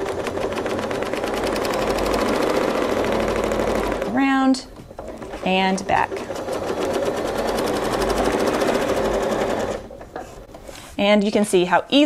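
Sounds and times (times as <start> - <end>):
sewing machine stitching: 0.0 - 10.2.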